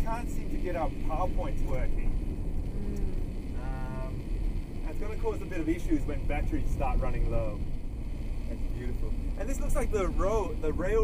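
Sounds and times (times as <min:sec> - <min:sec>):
pitched hum: 0:00.0 - 0:11.0
road and engine noise: 0:00.0 - 0:11.0.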